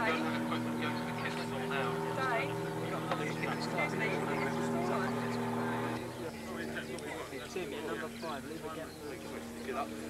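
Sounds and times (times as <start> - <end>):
faint voices talking: 0.0 - 10.0
steady mechanical drone: 0.0 - 10.0.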